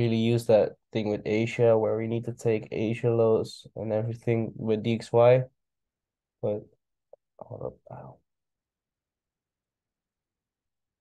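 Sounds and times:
man speaking: 0.0s - 5.6s, 6.4s - 6.8s, 7.4s - 8.2s.

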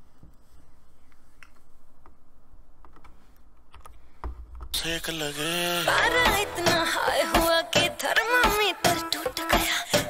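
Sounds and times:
man's voice: 4.8s - 6.7s.

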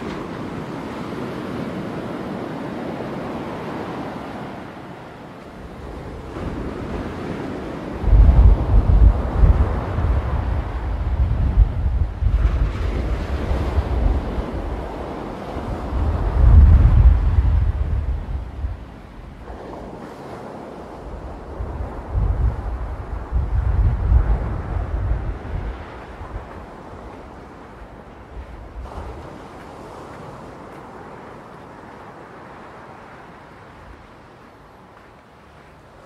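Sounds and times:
sea waves breaking on shore: 0.0s - 36.0s
wind buffeting microphone: 0.0s - 36.0s.

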